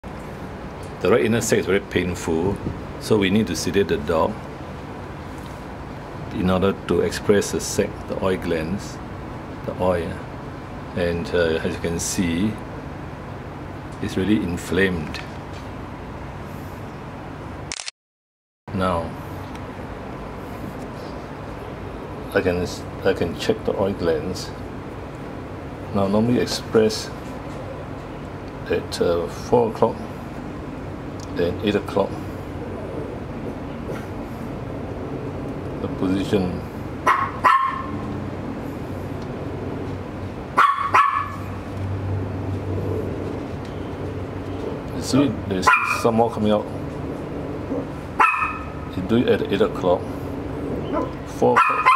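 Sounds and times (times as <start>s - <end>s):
room hum and hiss: 0.1s - 17.7s, 18.7s - 40.6s, 41.4s - 51.6s
dog barking: 37.1s - 38.0s, 40.6s - 41.4s, 45.6s - 46.1s, 48.2s - 48.8s, 50.9s - 51.9s.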